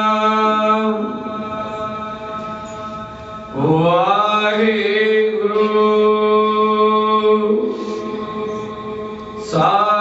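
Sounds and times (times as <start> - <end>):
man singing: 0.0 - 1.5, 3.5 - 10.0
steady sustained drone: 0.0 - 10.0.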